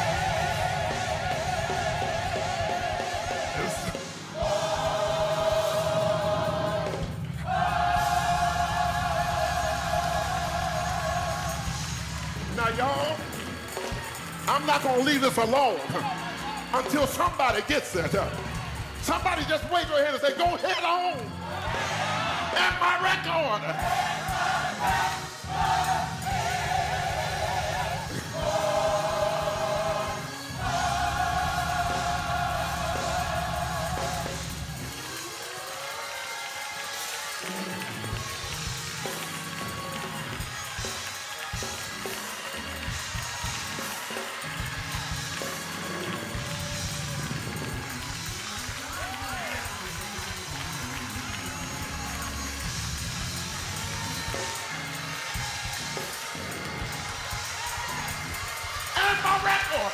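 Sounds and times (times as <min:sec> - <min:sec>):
congregation calling out: 0:00.0 - 0:13.7
bass: 0:00.0 - 0:20.0, 0:21.1 - 0:35.2, 0:37.8 - 0:59.9
organ chords: 0:00.0 - 0:59.9.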